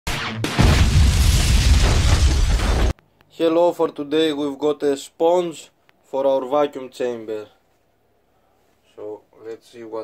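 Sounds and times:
explosion boom with deep rumble: 0.4s - 2.9s.

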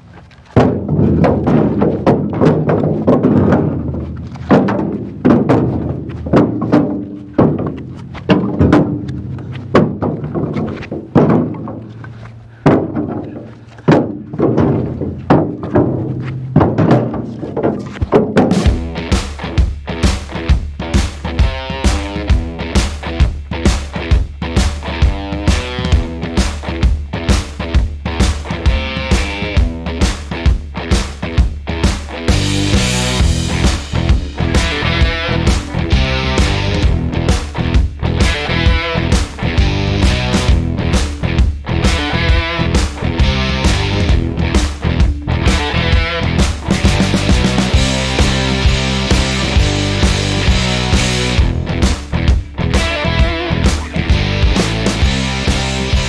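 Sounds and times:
firewood thrown into trailer: 0.4s - 18.8s
rock music: 18.5s - 56.0s.

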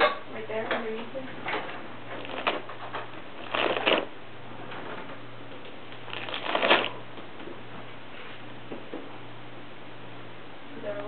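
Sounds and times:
faint steady hum: 0.0s - 11.0s
ripping and crinkling paper: 2.1s - 4.1s, 6.0s - 7.0s.

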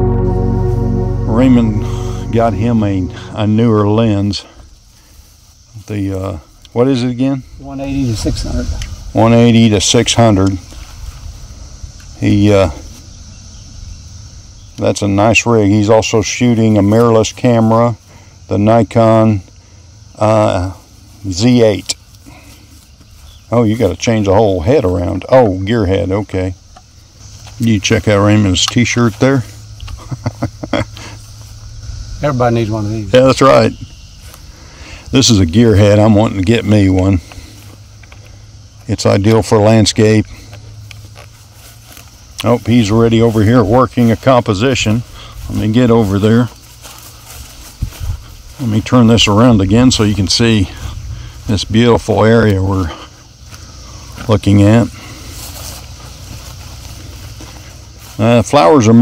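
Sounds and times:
man laughing: 29.9s - 31.2s
wind buffeting microphone: 47.8s - 48.6s.

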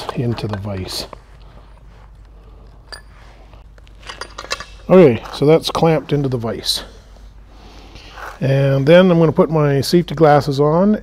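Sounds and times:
light metallic clinks: 2.7s - 3.2s.

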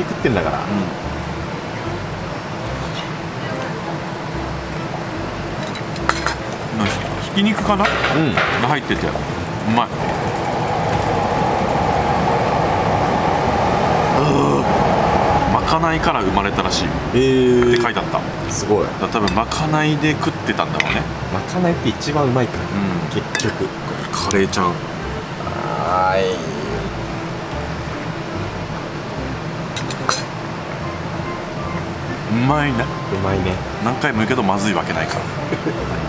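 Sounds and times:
passing vehicle rumbling: 0.0s - 36.0s.

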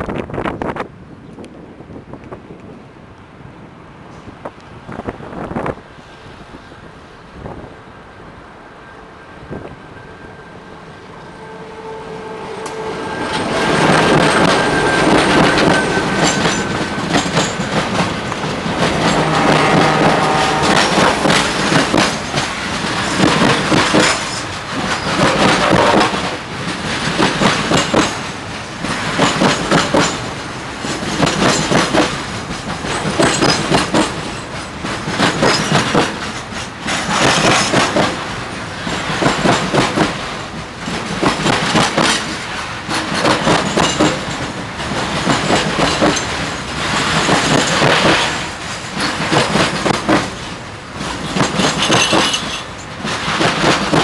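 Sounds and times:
diesel locomotives passing: 0.0s - 54.0s
wagon wheels clattering over rail joints: 13.3s - 54.0s.

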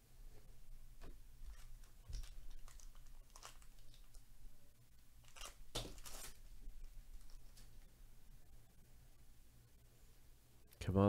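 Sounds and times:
foil wrapper tearing and crinkling: 1.5s - 4.2s, 5.2s - 6.6s.

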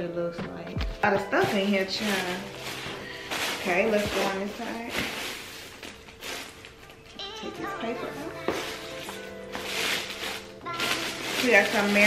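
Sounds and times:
shredded paper rustling: 1.0s - 12.0s.

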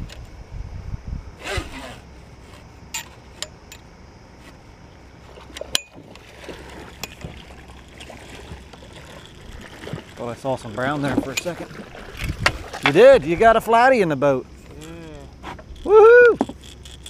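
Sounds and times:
steady low rumble: 0.0s - 1.4s
person shouting: 15.9s - 16.4s.

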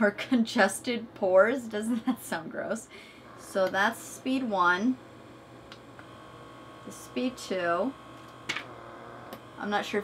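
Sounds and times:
thin steady whine: 0.0s - 10.0s
small electric suction motor: 2.9s - 10.0s.

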